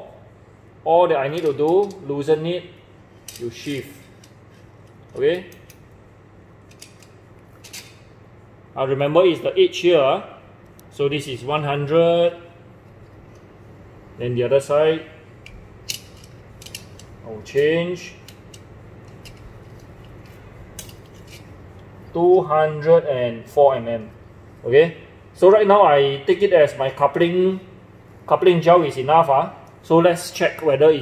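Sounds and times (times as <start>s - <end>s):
steady low hum: 0.0s - 31.0s
faint metallic clicks and scrapes: 3.2s - 5.8s, 15.4s - 17.2s, 18.2s - 21.9s.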